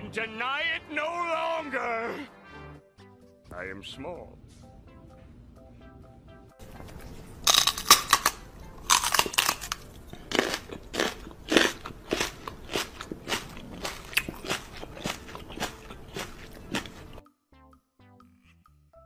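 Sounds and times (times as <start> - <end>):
crunchy smacking mouth sounds: 7.5 - 17.2.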